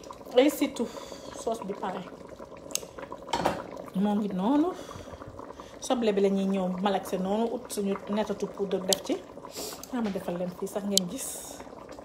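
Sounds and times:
stew bubbling: 0:00.0 - 0:12.0.

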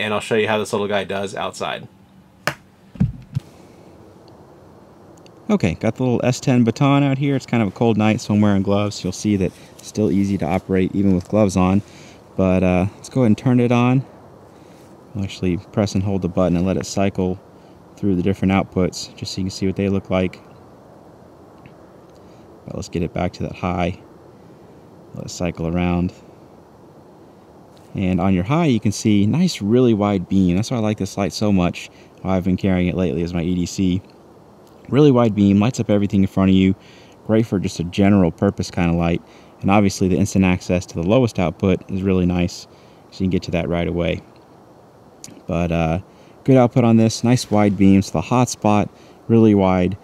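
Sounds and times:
faint steady hiss: 0:00.0 - 0:50.0
dull low thumps: 0:02.4 - 0:03.5.

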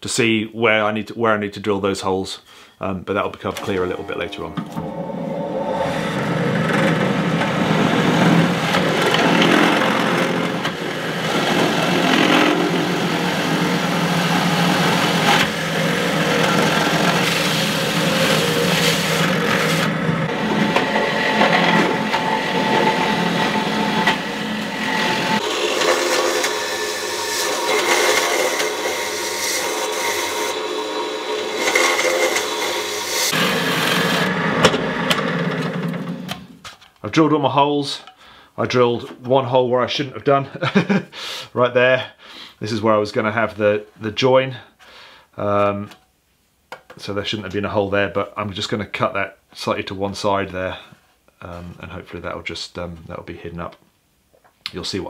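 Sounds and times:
drill motor hum: 0:04.3 - 0:36.4
drill bit grinding metal can: 0:05.6 - 0:35.9.

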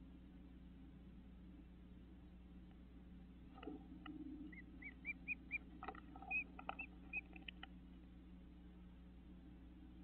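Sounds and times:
bird chirping: 0:04.4 - 0:07.7.

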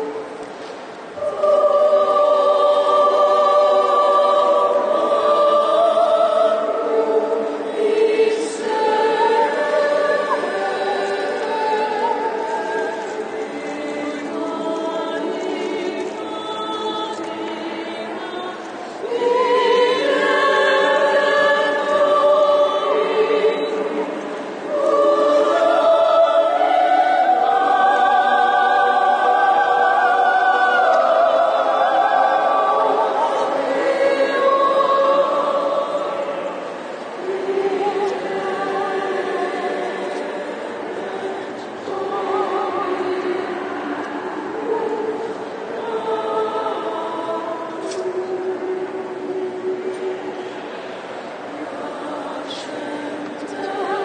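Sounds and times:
mixed choir singing: 0:00.0 - 0:54.0.

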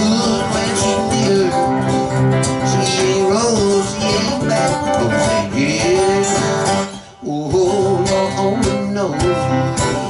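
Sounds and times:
acoustic guitar: 0:00.0 - 0:10.0.

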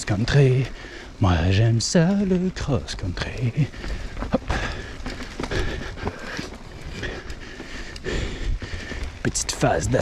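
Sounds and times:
bike tyres rolling on dirt: 0:00.0 - 0:10.0
bike knocks and rattles: 0:02.6 - 0:07.8.

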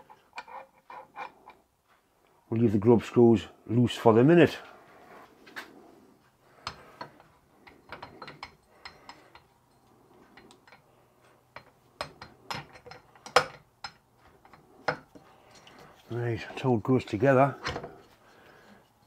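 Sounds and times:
small metal parts clicking: 0:11.5 - 0:16.1.

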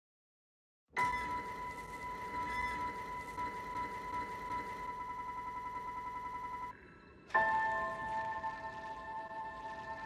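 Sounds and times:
fast electronic pulsing: 0:01.0 - 0:06.7
electronic drone: 0:01.0 - 0:10.0.

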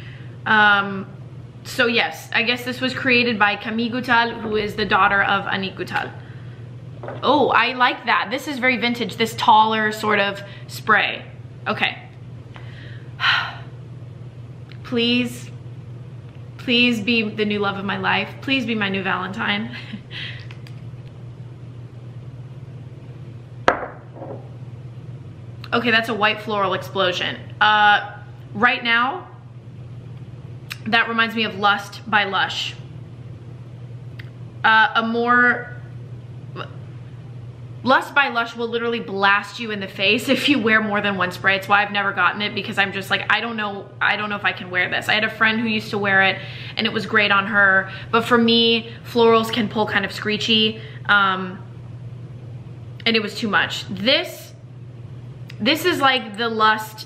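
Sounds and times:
low room hum: 0:00.0 - 0:57.0
woman talking: 0:00.5 - 0:06.2, 0:07.1 - 0:12.1, 0:14.8 - 0:15.6, 0:16.6 - 0:19.9, 0:25.6 - 0:29.4, 0:30.7 - 0:32.8, 0:34.6 - 0:35.8, 0:37.8 - 0:51.7, 0:53.0 - 0:54.6, 0:55.5 - 0:57.0.

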